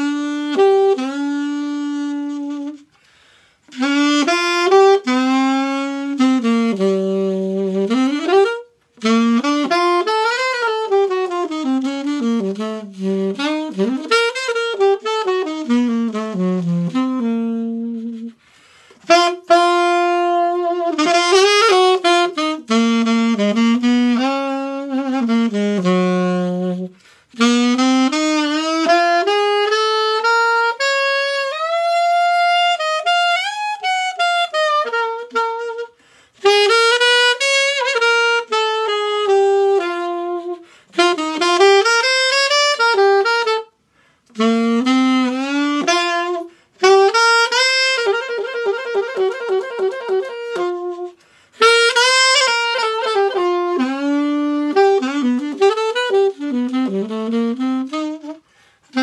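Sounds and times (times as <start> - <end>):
alto saxophone ballad melody: 0.0 - 59.0.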